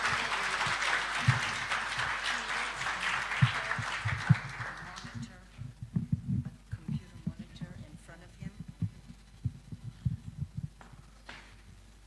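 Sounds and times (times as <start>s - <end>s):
microphone handling thumps: 5.6s - 11.8s.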